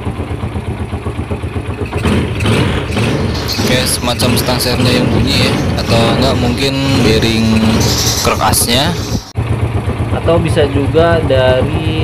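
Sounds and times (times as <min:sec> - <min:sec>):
motorcycle engine idling with rattle: 0:00.0 - 0:12.0.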